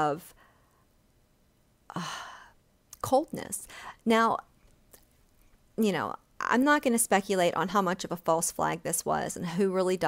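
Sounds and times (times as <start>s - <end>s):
woman sighing: 1.9s - 2.6s.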